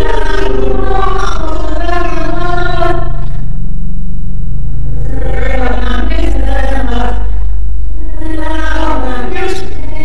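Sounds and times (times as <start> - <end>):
low drone rumble: 0.0 - 10.0.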